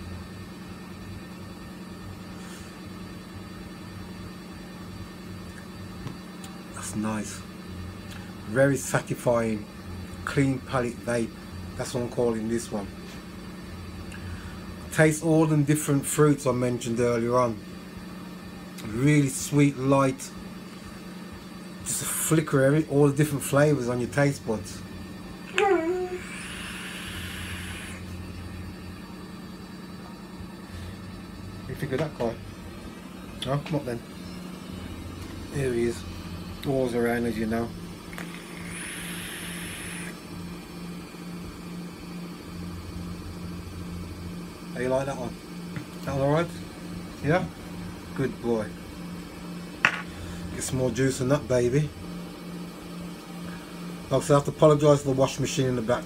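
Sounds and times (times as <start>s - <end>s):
washing machine humming: 0.0s - 56.0s
e-cigarette air hissing: 25.9s - 28.2s, 38.1s - 40.2s.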